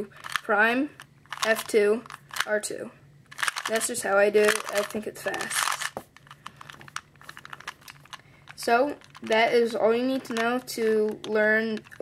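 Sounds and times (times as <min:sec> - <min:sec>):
puzzle cube plastic clicks: 0:00.1 - 0:02.6, 0:03.3 - 0:12.0.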